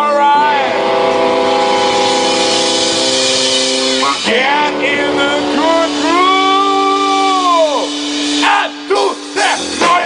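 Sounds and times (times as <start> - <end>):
person singing: 0.0 - 3.2, 4.0 - 10.0
electric guitars sustained chord: 0.0 - 10.0
cymbals washing: 0.8 - 10.0.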